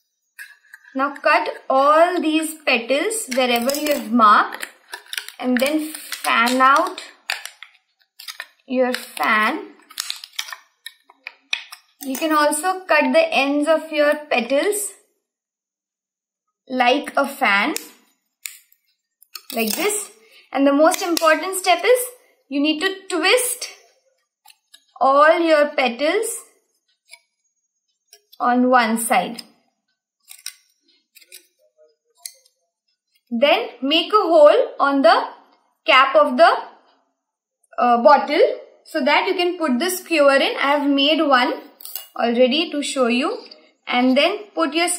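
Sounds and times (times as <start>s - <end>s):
plastic bottle crinkling: 3.3s - 12.4s, 19.3s - 20.0s
plastic clicks and crackles: 3.3s - 12.6s, 17.8s - 20.2s, 20.9s - 21.7s, 30.3s - 31.5s.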